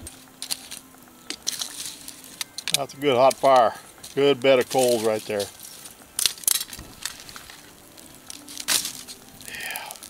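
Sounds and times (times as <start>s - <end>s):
faint steady hum: 0.0s - 4.8s
hot coals crackling: 0.0s - 10.0s.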